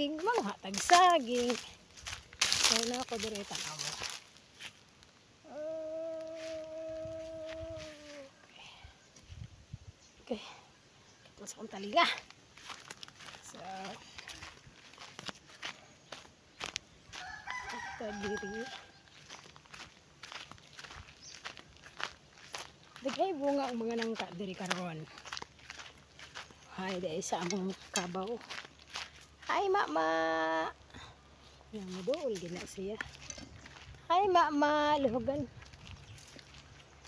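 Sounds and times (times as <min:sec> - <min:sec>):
footsteps crunching on leaves: 0:00.0 - 0:05.2, 0:06.2 - 0:08.3, 0:11.7 - 0:30.2, 0:31.6 - 0:37.0
long vocal call: 0:05.4 - 0:08.6.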